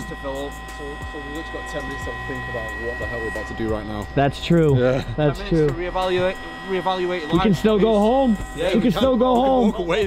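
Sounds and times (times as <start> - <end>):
electric air pump whining: 0.0 - 10.0
voices talking: 0.0 - 10.0.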